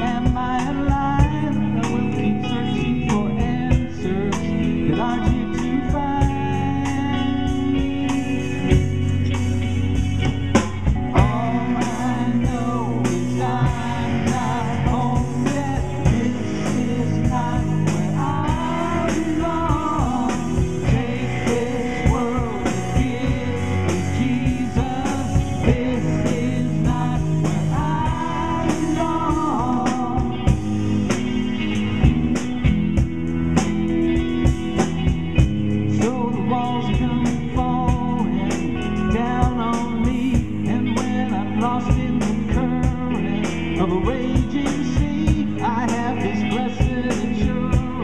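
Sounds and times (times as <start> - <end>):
pop-rock band playing: 0.0 - 48.0.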